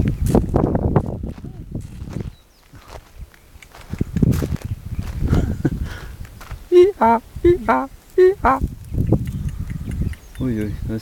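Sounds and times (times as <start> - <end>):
footsteps crunching on gravel: 0.0 - 5.4.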